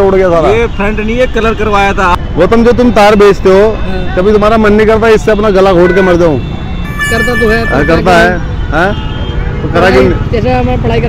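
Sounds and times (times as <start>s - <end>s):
road traffic rumbling: 0.0s - 11.0s
short high steady note: 6.8s - 8.3s.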